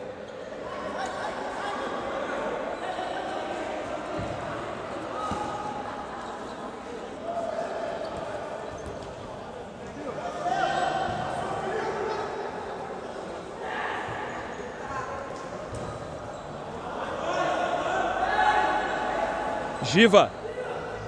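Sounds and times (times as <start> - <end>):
players shouting in echoing hall: 0.1 - 21.0.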